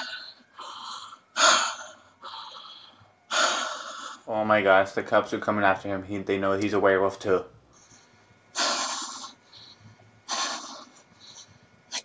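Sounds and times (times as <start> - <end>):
man breathing heavily: 0.0 - 4.3, 7.7 - 12.0.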